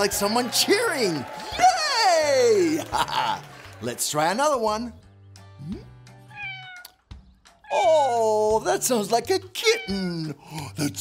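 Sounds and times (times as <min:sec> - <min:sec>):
soft background music: 0:00.0 - 0:11.0
kitten meowing: 0:06.3 - 0:07.0, 0:09.7 - 0:10.1.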